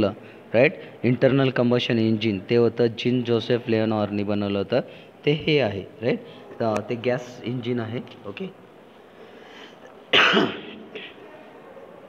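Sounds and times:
man clearing his throat: 10.2 - 11.2.

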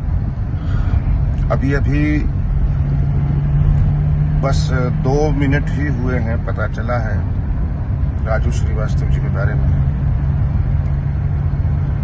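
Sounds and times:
car cabin rumble and hum: 0.0 - 12.0.

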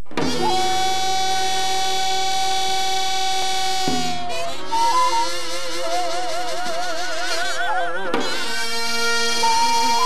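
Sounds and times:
long held melodic note: 0.3 - 10.0.

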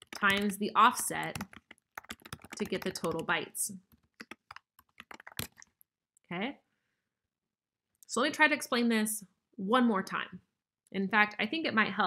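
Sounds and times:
computer keyboard typing: 0.0 - 5.7.

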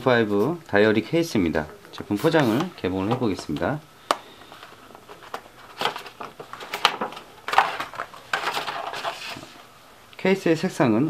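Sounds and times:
cardboard box rustling and scraping: 5.1 - 9.6.

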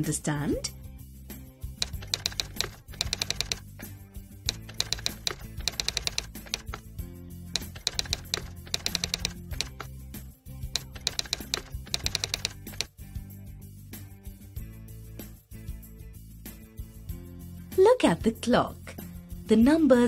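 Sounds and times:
background music: 0.0 - 20.0
typewriter clicks: 1.8 - 3.9, 4.5 - 6.8, 7.6 - 9.9, 10.8 - 12.9.

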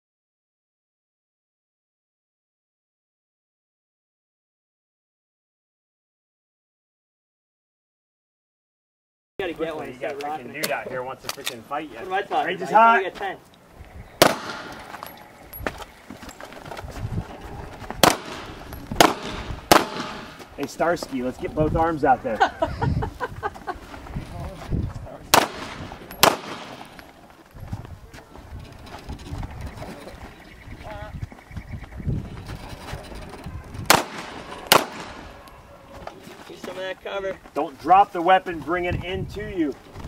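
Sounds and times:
loud gunshot: 14.2 - 15.0, 18.0 - 20.4, 25.3 - 27.0, 33.9 - 35.4
pistol shots: 14.2 - 15.1, 18.0 - 20.5, 25.3 - 27.0, 33.9 - 35.4
shuffling: 14.7 - 19.0, 20.3 - 25.2, 35.2 - 40.0.

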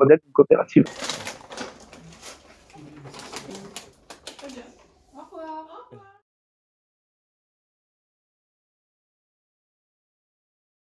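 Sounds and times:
paper bag rustling: 0.9 - 4.9.

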